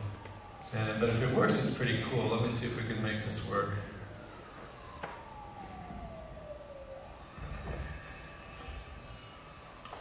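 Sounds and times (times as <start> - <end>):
tone sliding down in pitch: 0.0 - 9.2.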